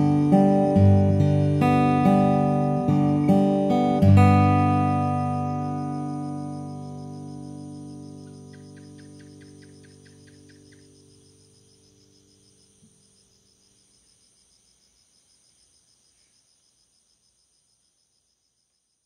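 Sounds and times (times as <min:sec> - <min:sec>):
crickets and insects chirping: 0:00.0 - 0:19.0.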